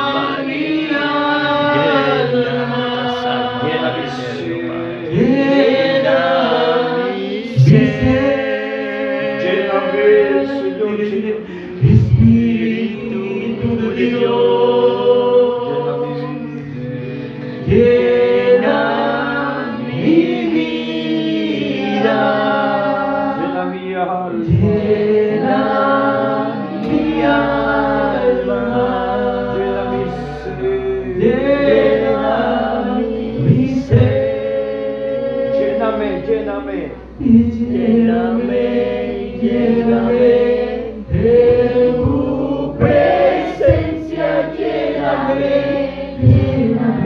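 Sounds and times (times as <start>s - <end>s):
congregation singing a hymn: 0.0s - 47.0s.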